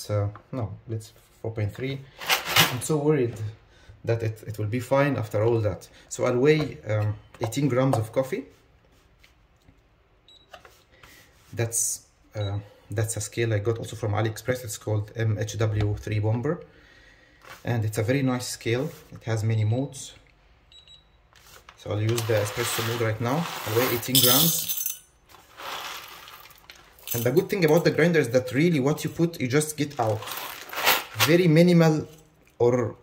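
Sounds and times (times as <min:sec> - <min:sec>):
coffee beans rattling into metal cup: 0:22.1 - 0:27.9.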